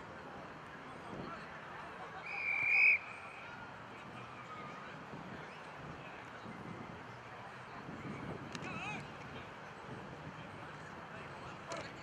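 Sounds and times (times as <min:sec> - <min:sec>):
referee's whistle: 0:02.2 - 0:03.2.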